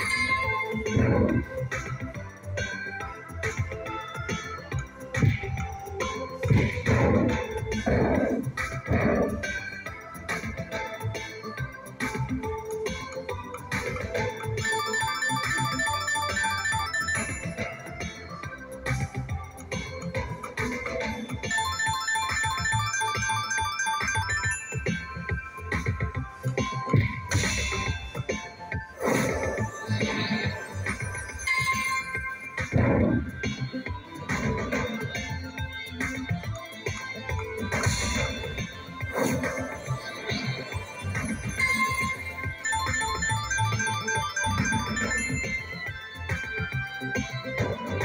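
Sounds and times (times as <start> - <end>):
slot machine electronic music: 0.0 - 48.0
short repeated chiming notes: 21.5 - 25.6.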